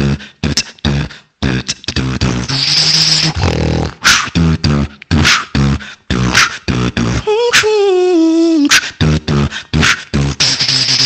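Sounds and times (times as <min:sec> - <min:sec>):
beatboxing: 0:00.0 - 0:11.0.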